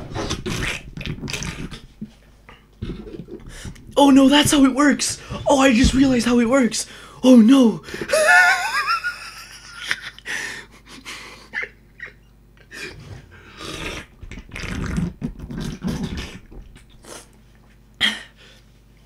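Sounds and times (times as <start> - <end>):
man laughing wheezily: 8.0 - 12.2.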